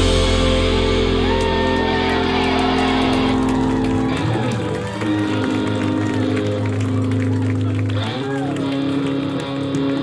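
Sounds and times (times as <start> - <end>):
electric guitar chords ringing: 0.0 - 10.0
live rock band playing: 0.0 - 10.0.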